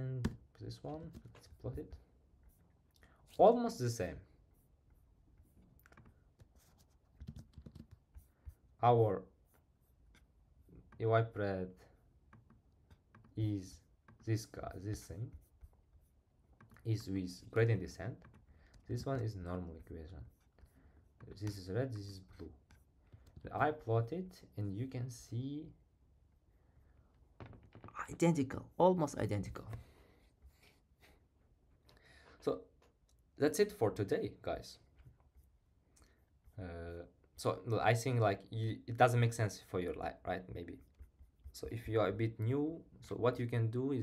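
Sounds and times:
person speaking: 0.0 - 2.6, 13.2 - 15.8, 16.6 - 25.9, 27.9 - 30.0.

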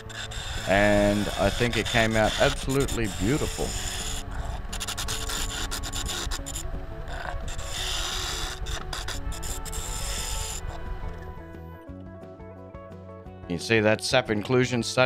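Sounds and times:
lathe gouge scraping wood: 0.0 - 11.6
background music: 0.0 - 15.0.

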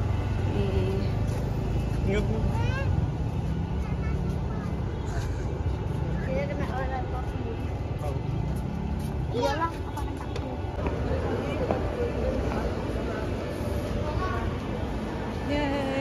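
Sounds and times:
low rumble of street traffic: 0.0 - 16.0
people's voices: 0.0 - 16.0.

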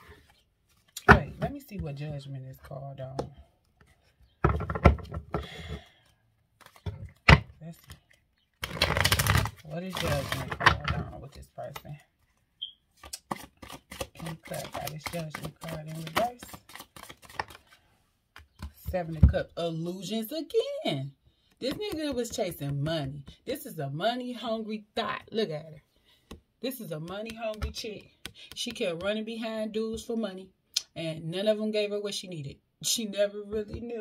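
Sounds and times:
cards knocking and clicking: 3.1 - 5.9, 13.0 - 17.7, 18.3 - 19.4, 21.6 - 23.4, 27.0 - 29.2
cards rustling against each other: 5.8 - 7.2, 7.8 - 10.7, 11.7 - 18.8.

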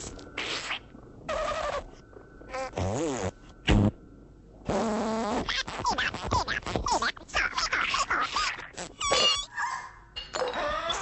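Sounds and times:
cartoon creature squeaks: 5.2 - 9.5, 10.4 - 11.0.

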